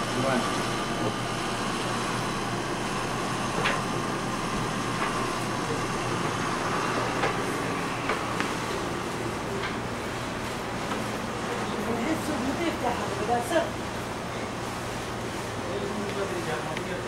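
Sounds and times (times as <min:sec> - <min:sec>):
machine hum: 0:00.0 - 0:17.0.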